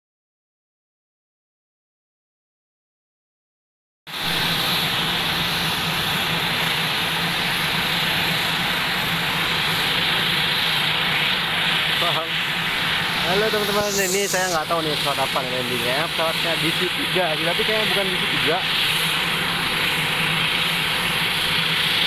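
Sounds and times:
turboprop engines running: 4.1s - 22.0s.

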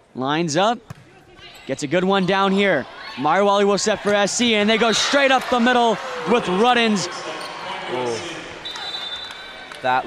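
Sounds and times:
faint arena background noise: 0.0s - 10.0s
referee's whistle: 8.6s - 9.6s.

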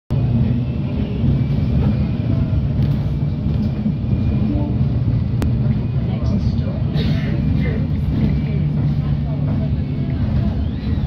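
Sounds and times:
bus engine and road rumble: 0.1s - 11.0s.

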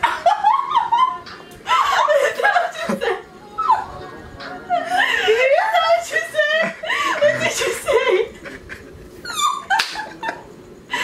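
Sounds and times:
women laughing breathlessly: 0.0s - 4.0s, 4.7s - 11.0s.

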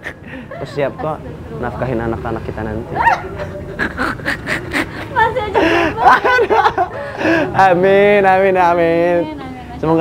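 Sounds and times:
person laughing: 3.1s - 7.6s.

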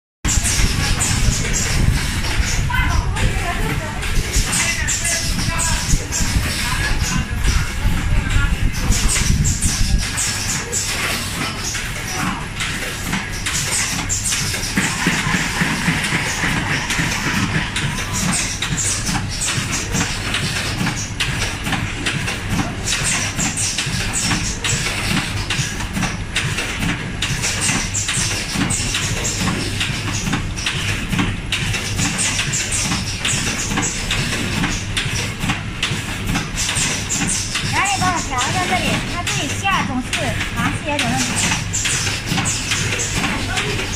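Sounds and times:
fast mechanical clicking and clatter: 0.3s - 43.9s
machine humming: 0.3s - 43.9s.

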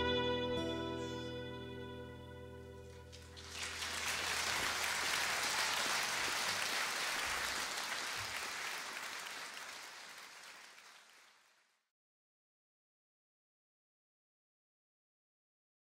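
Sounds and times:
audience applauding: 3.0s - 11.7s.

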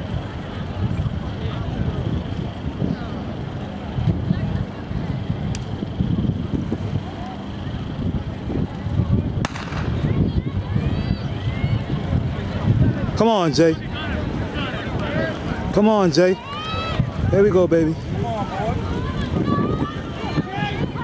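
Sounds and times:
low rumble: 7.8s - 13.2s
starter's gun firing: 9.4s - 10.2s.

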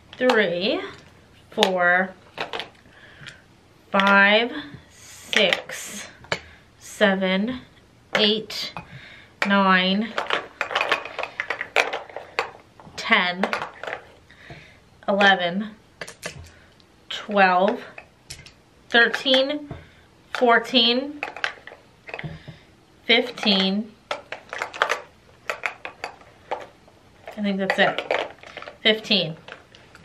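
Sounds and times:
plastic containers clicking and knocking: 0.1s - 3.4s, 8.1s - 15.4s, 16.0s - 16.6s, 21.2s - 22.6s, 23.3s - 30.0s
makeup products clinking: 8.2s - 14.2s, 20.3s - 22.4s, 23.3s - 30.0s.

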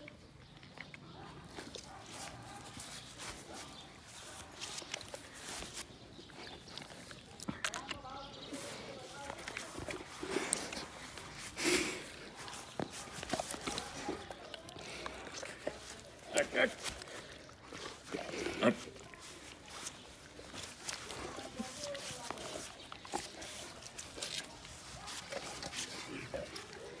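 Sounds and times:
dog sniffing and mouthing meat: 0.0s - 27.0s.

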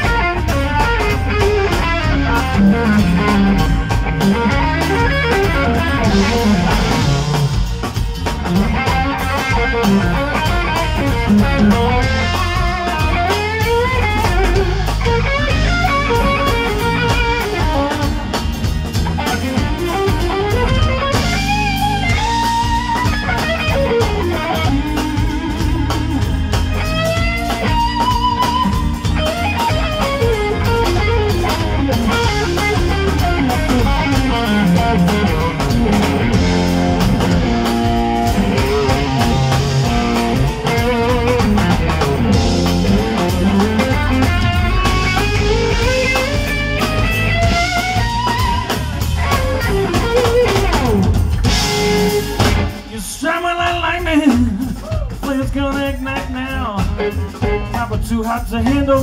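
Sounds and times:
blues-rock band playing: 0.0s - 59.0s
electric guitar bending notes: 0.0s - 59.0s.

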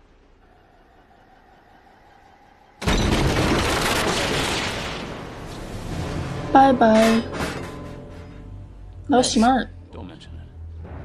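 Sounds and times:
loud cinematic blast: 2.8s - 6.8s.

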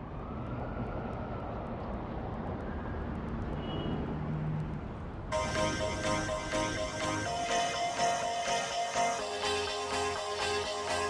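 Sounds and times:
low traffic rumble: 0.0s - 7.0s
siren-like tone: 5.3s - 11.0s.

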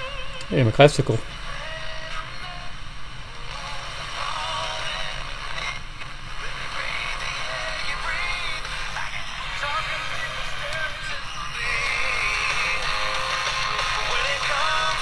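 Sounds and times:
background hiss: 0.0s - 15.0s
classical music from small radio: 3.4s - 15.0s.

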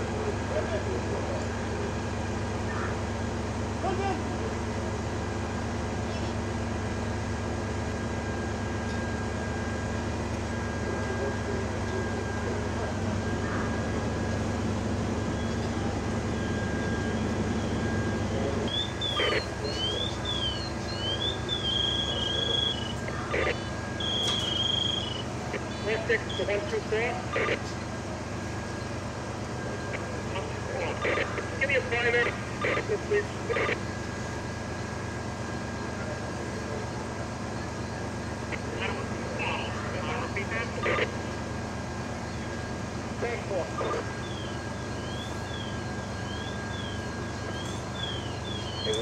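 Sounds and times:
fire engine rumble: 0.0s - 49.0s
high electronic tones: 18.7s - 26.5s, 29.9s - 33.8s.

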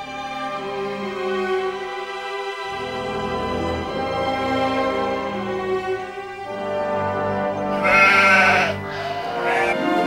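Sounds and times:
background music: 0.0s - 10.0s
goat bleating: 7.8s - 10.0s.

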